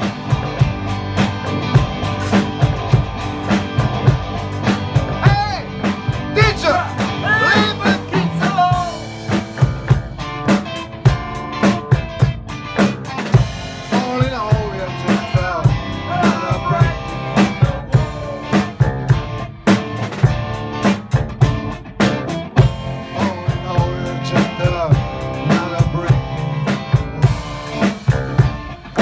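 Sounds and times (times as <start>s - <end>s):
drum kit steady beat: 0.0s - 29.0s
electric bass: 0.0s - 29.0s
electric guitar: 0.0s - 29.0s.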